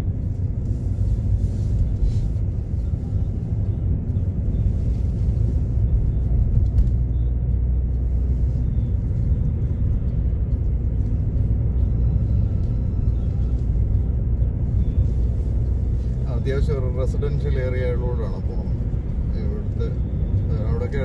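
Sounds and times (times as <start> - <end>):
road vehicle rumble: 0.0 - 21.0.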